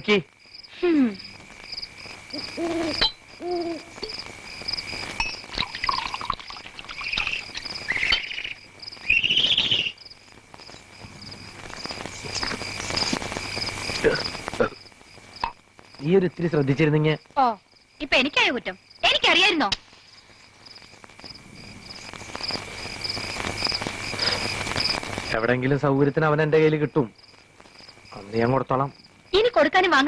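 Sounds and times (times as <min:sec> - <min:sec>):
crickets chirping: 0:00.0 - 0:30.0
rising insect calls: 0:00.0 - 0:30.0.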